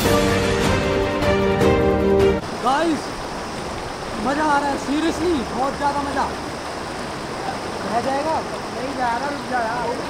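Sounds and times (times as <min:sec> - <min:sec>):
river rushing over rocks: 0:02.4 - 0:10.0.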